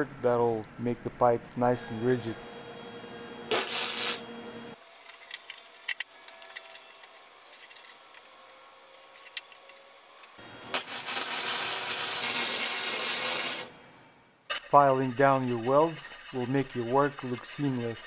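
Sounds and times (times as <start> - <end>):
welder arc crackling: 3.5 - 4.3, 10.2 - 13.7.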